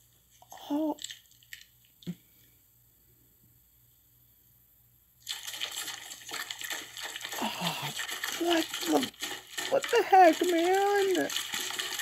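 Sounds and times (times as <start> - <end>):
wet squelching of stuffing: 5.2 - 12.0.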